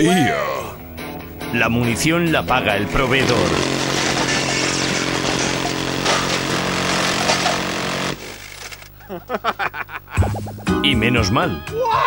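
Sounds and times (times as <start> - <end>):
minigun firing: 3.1 - 8.9.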